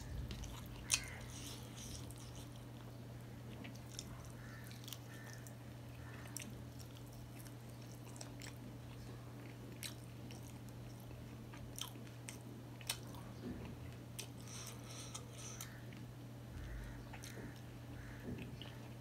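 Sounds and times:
person chewing food: 0.0s - 19.0s
steady low hum: 0.0s - 19.0s.

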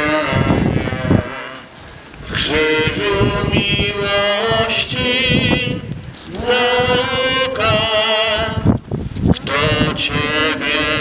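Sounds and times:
group singing a slow hymn: 0.0s - 11.0s.

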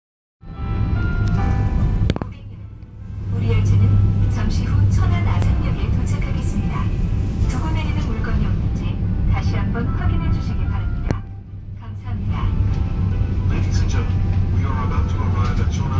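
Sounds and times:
train rumbling: 0.5s - 15.9s
recorded voice announcing: 3.3s - 12.7s, 13.5s - 15.9s
click: 11.1s - 11.3s.

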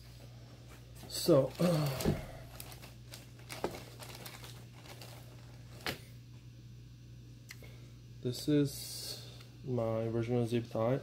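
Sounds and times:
plastic bag crinkling: 1.1s - 6.0s.

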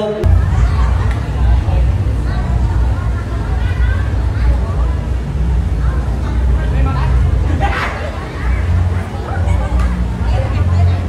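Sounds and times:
faint voices: 0.0s - 11.0s
vehicle engine idling: 0.2s - 11.0s.

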